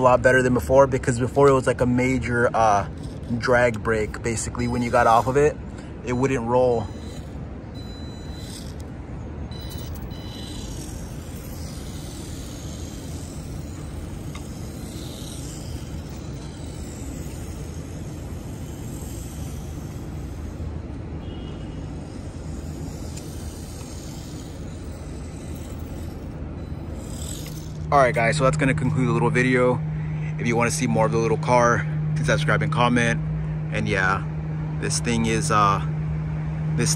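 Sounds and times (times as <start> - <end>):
toy car electric motor whine: 0.0 - 29.6
city traffic rumble: 0.0 - 36.9.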